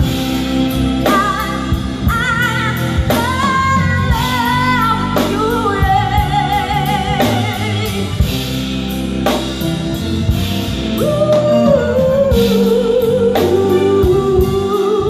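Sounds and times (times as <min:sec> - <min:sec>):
bass guitar: 0:00.0 - 0:15.0
woman singing with vibrato: 0:01.0 - 0:08.4, 0:11.0 - 0:15.0.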